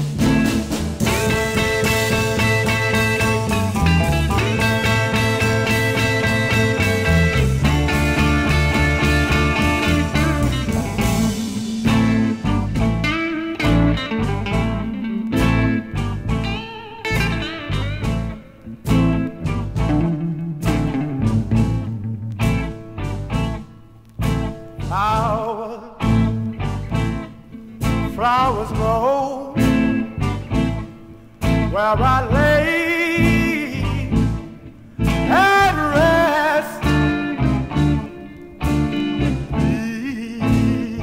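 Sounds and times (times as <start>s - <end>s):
bass and drums: 0.0s - 41.0s
blues band chord: 0.0s - 41.0s
electric guitar bent notes: 0.0s - 41.0s.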